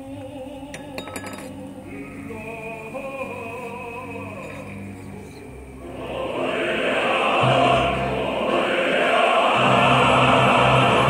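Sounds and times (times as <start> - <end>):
held orchestra notes: 1.6 - 11.0.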